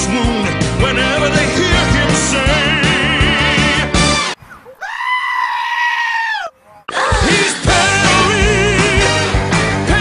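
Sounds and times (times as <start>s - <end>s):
backing music: 0.0s - 4.4s, 6.9s - 10.0s
goat screaming: 4.5s - 6.8s.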